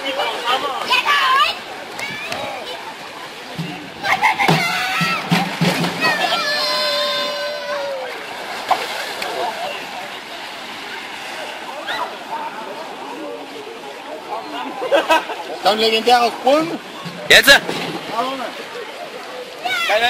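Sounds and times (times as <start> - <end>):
people shouting: 4.0 - 8.3.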